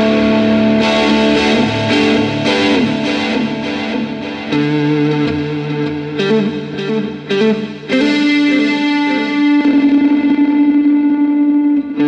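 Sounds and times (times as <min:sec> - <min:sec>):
electric guitar with overdrive: 0:00.0 - 0:12.0.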